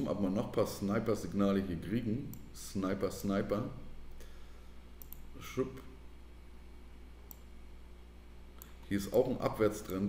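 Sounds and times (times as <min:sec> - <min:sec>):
man speaking: 0:00.0 - 0:03.9, 0:05.3 - 0:06.0, 0:08.9 - 0:10.0
steady low hum: 0:00.0 - 0:10.0
computer mouse click: 0:05.0 - 0:05.3, 0:07.2 - 0:07.5.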